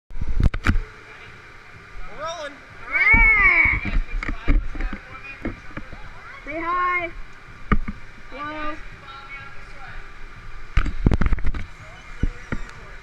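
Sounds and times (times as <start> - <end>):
voice calls: 1.0 - 4.0.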